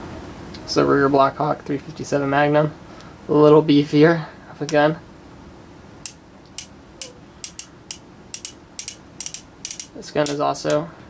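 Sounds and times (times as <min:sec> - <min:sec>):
revolver cylinder clicking: 0:06.0 - 0:10.8.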